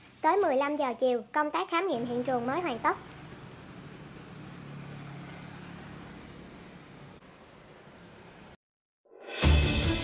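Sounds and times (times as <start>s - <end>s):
traffic noise: 0.0s - 8.6s.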